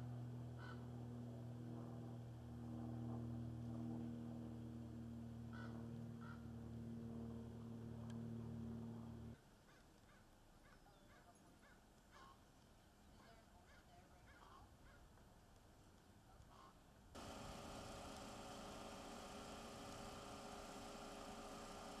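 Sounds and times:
faint bird calls: 0.6 - 0.9, 5.5 - 6.5, 9.6 - 12.5, 13.1 - 15.1, 16.5 - 16.8
car engine idling: 17.2 - 22.0.

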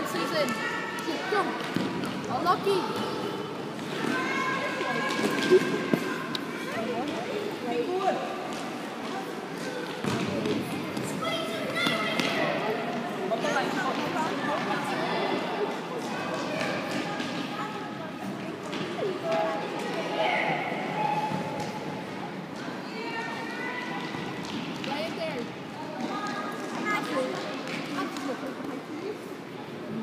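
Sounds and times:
people calling and shouting: 0.0 - 30.0.

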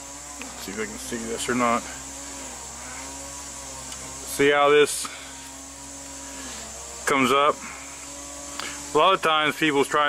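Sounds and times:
single-cylinder engine running: 0.0 - 10.0.

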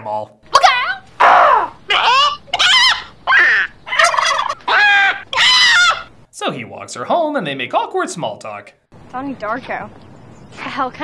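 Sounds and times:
bird call sound effects: 0.6 - 6.1.

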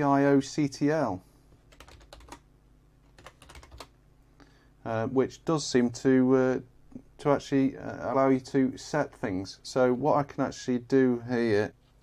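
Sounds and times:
keyboard keys clicking: 1.7 - 2.4, 3.1 - 3.9.

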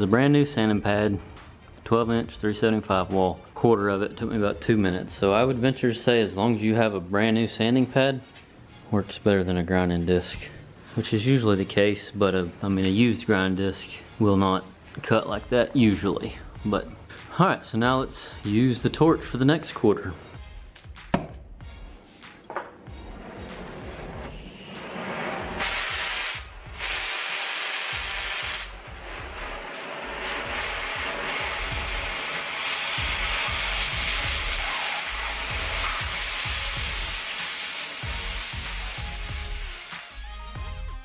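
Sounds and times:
cutting torch hissing: 23.5 - 40.3.

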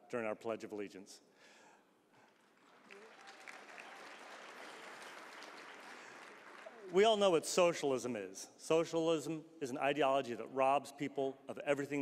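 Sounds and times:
faint audience applause: 2.2 - 7.3.

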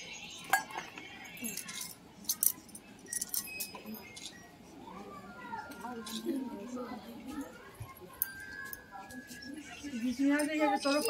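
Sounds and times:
bangles clinking: 0.4 - 4.5, 8.1 - 11.0.

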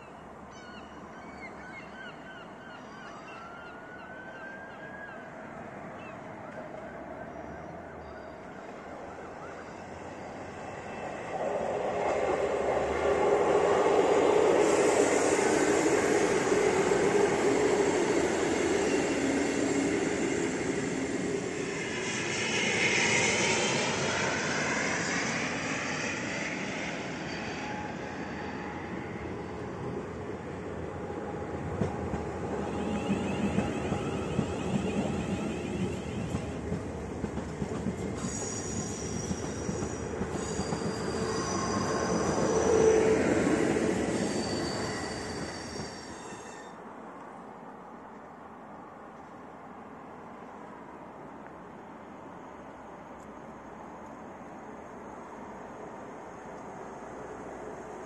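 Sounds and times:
train whining and squealing: 0.0 - 47.0
train rumbling over track: 5.5 - 47.1.

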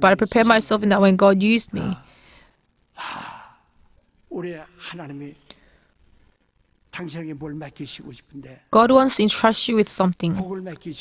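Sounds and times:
breath into microphone: 2.1 - 3.6, 5.5 - 6.4.

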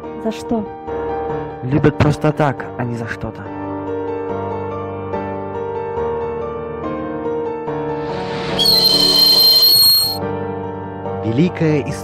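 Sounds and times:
shrill whistling screech: 8.6 - 10.2.

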